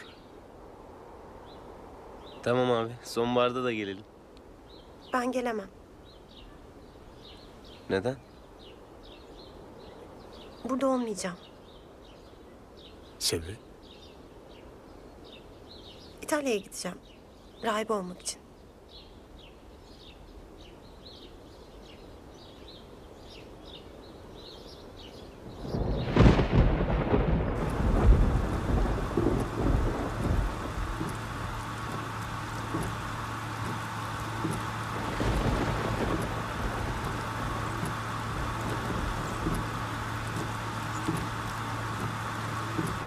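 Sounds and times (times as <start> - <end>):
steady hiss: 0.0 - 43.0
loud rolling rumble: 25.6 - 43.0
low hum: 25.7 - 43.0.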